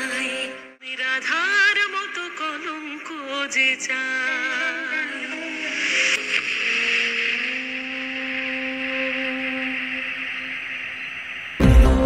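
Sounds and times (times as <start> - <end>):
sustained music note: 6.4 - 12.0.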